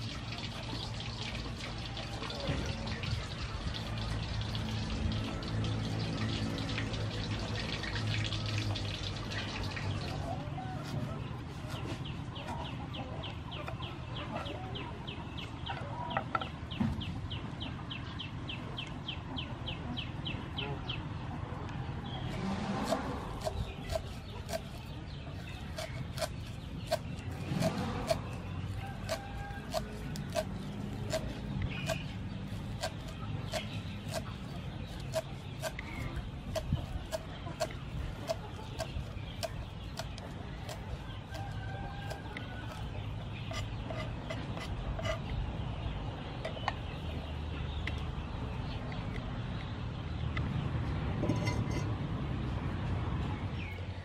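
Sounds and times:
faint birds calling: 9.2 - 51.6
knife chopping on wooden board: 22.4 - 24.9, 25.7 - 28.4, 29.0 - 32.1, 32.8 - 37.7, 38.3 - 45.2.

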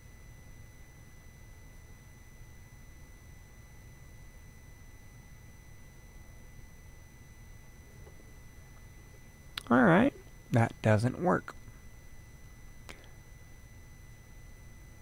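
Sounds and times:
high-pitched electrical whine: 0.0 - 15.0
low hum: 0.0 - 15.0.

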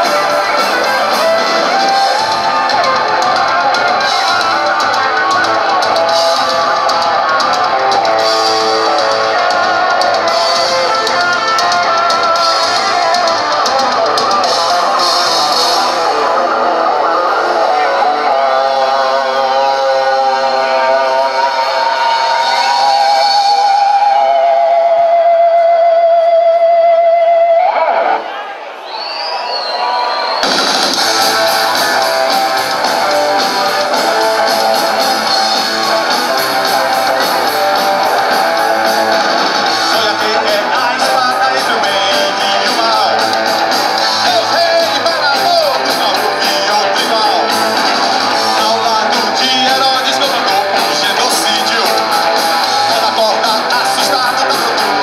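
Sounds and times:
person singing: 0.0 - 27.6, 31.1 - 55.0
rock band playing: 0.0 - 28.3, 29.7 - 55.0.

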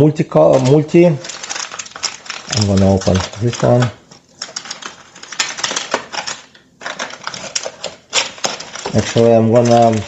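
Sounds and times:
foil packet crinkling: 0.4 - 10.0.

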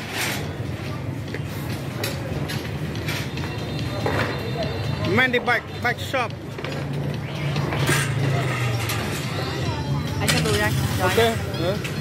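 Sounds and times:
busy street noise: 0.0 - 12.0.

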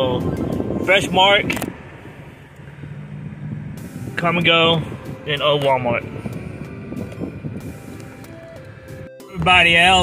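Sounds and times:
car engine and road hum: 0.0 - 10.0
low drone: 1.6 - 5.4, 6.0 - 9.1.

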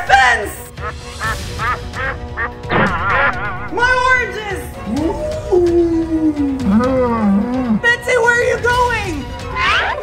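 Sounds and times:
cow mooing: 6.6 - 7.8.

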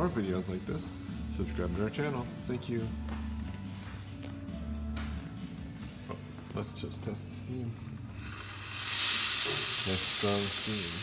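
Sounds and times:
loud steam hiss: 8.2 - 11.0.

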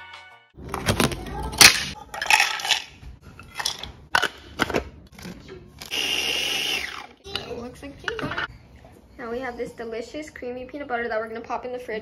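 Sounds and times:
food processor pulsing: 5.9 - 7.2.

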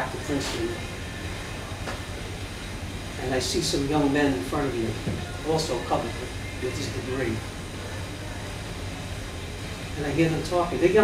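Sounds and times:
room noise rumble and hum: 0.0 - 11.0.

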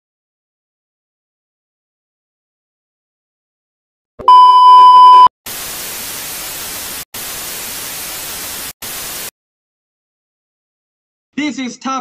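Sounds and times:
high steady beep: 4.2 - 5.3
tv static hiss: 4.9 - 9.3.

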